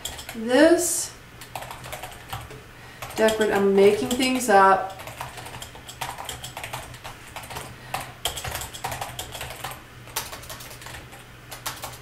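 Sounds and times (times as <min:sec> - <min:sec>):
keyboard typing: 0:00.0 - 0:00.4, 0:01.4 - 0:12.0.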